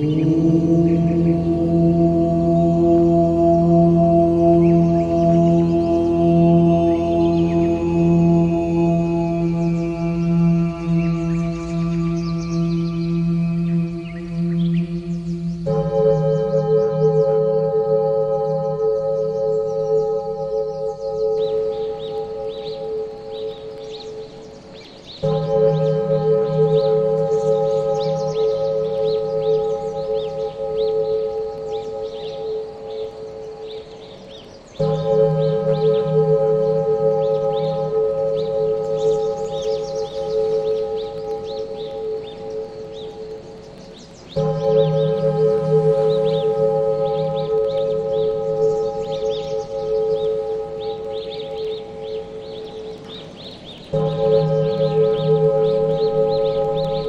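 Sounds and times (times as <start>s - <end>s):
deep singing bowl tone: 0.0s - 24.6s, 25.2s - 57.0s.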